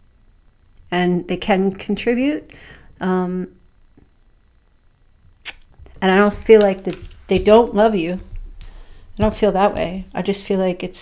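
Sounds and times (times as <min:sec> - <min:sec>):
sharp intake of breath: 0:02.5 - 0:03.0
mouth clicks: 0:05.4 - 0:06.0.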